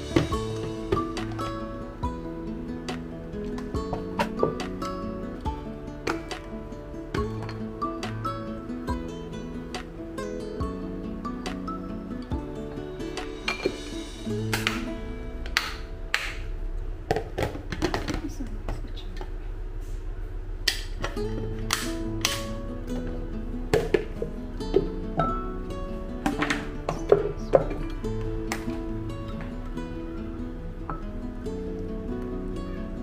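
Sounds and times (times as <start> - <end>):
guitar music: 0.0 - 17.6, 20.9 - 33.0.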